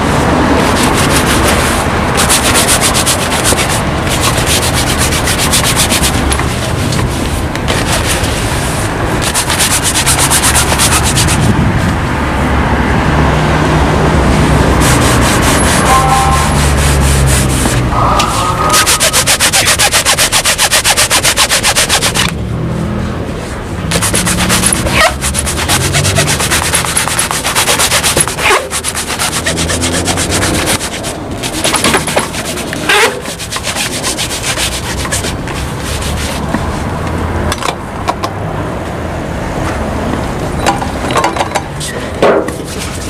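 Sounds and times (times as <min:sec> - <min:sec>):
cloth rubbing leather shoe: 0:00.2 - 0:11.6, 0:14.5 - 0:22.3, 0:23.8 - 0:37.0, 0:42.5 - 0:43.0.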